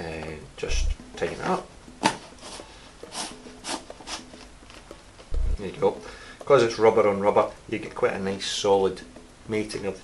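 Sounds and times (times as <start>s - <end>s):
rubber cap rubbing scrapes: 2.3s - 4.4s.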